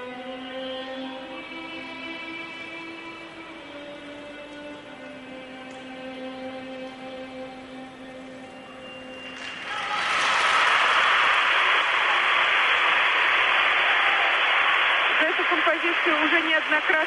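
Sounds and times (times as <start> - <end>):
violin music: 0.0 - 9.3
crowd applause: 9.2 - 17.0.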